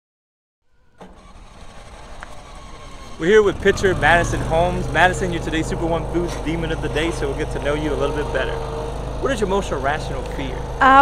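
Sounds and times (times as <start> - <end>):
low outdoor rumble: 0.7 - 11.0.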